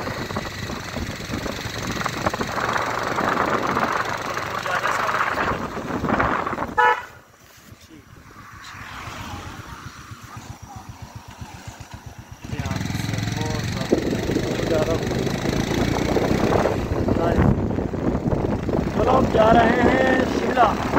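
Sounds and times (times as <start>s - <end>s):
motorcycle engine pulsing: 0.0s - 7.0s, 9.6s - 20.9s
wind rushing over microphone: 0.0s - 20.9s
vehicle horn beeping: 6.7s - 7.2s.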